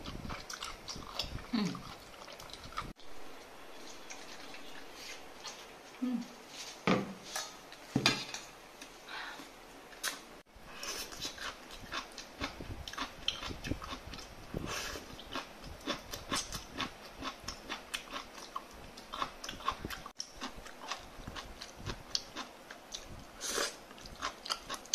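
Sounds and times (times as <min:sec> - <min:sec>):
person chewing prawns: 0:00.0 - 0:06.0, 0:10.0 - 0:24.9.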